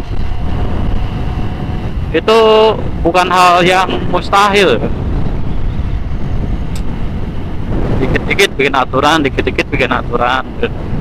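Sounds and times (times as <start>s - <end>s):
wind and road rumble: 0.0s - 11.0s.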